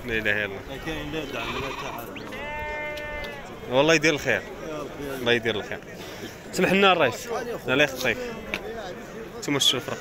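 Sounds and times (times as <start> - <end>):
men talking: 0.0 - 10.0
sheep bleating: 1.2 - 3.6.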